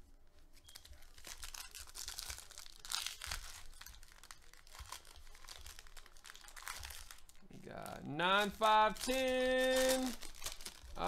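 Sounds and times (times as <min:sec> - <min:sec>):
foil pack crinkling and tearing: 0:00.5 - 0:11.0.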